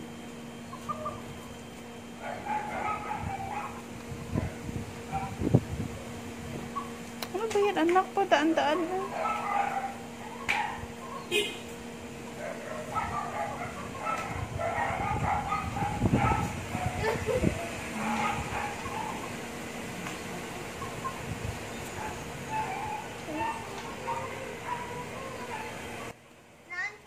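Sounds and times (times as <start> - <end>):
steady low hum: 0.0 - 26.7
dog yipping and whining: 2.2 - 3.8, 12.4 - 19.2, 21.9 - 25.8.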